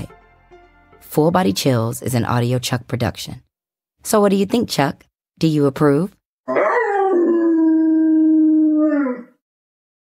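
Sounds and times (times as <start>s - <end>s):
dog howling: 6.5s - 9.4s.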